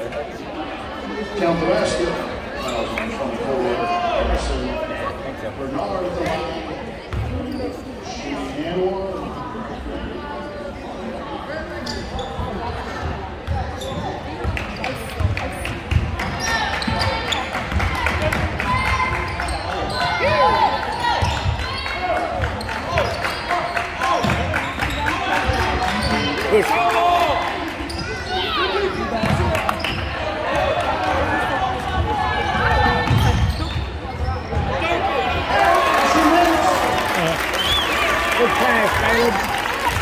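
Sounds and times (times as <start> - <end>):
spectators chatting: 0.0 - 40.0
sneakers squeaking: 7.1 - 8.0, 11.7 - 17.9, 18.8 - 26.6, 27.7 - 30.4, 31.8 - 36.4.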